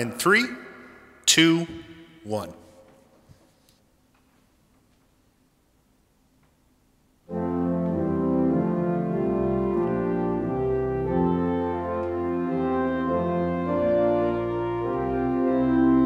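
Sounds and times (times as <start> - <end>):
organ playing slow chords: 7.3 - 16.0.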